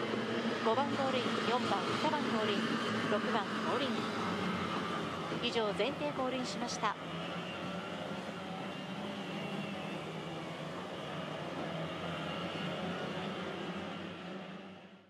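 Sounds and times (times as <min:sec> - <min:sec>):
distant outboard engines humming: 0:00.0 - 0:15.0.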